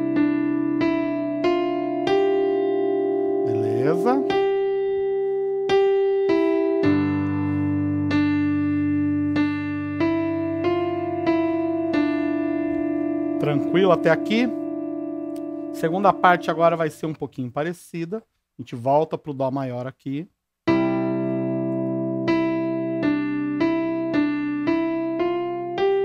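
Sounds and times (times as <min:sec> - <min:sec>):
electronic keyboard hymn melody: 0:00.0 - 0:17.3, 0:20.6 - 0:26.0.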